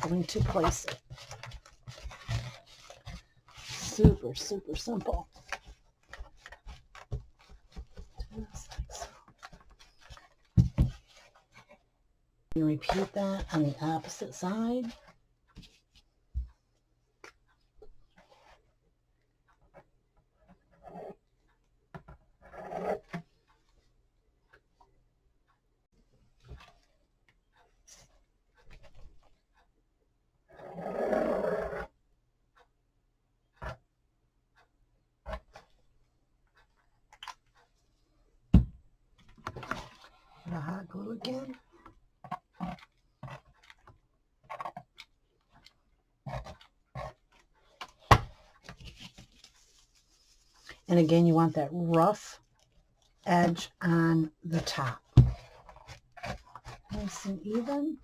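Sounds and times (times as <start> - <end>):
hands rubbing cardboard and paper: 0.0 - 11.8, 46.3 - 51.3.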